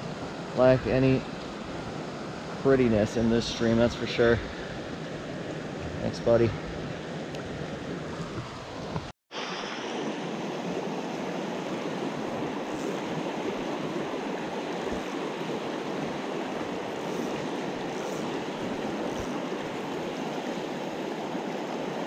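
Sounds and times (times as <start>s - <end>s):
stream rushing over rocks: 0.0s - 22.0s.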